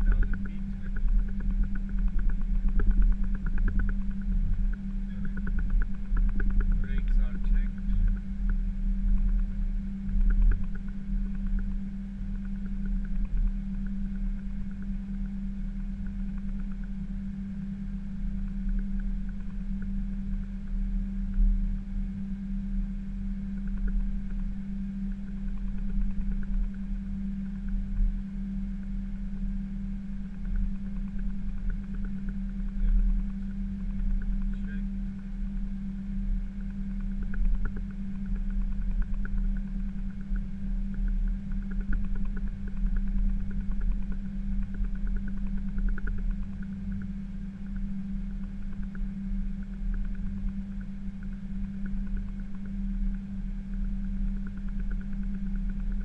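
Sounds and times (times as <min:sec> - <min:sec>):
aircraft cockpit droning hum: 0:00.0 - 0:56.0
low engine rumble: 0:00.0 - 0:56.0.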